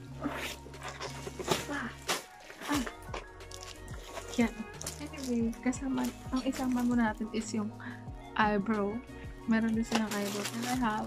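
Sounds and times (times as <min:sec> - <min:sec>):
plastic sleeves crinkling: 0:00.5 - 0:05.4, 0:09.8 - 0:11.0.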